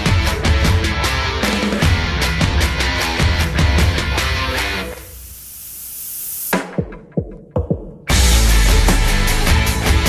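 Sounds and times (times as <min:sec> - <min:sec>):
heavy rock music: 0:00.0 - 0:05.1, 0:08.1 - 0:10.0
hiss: 0:04.7 - 0:06.6.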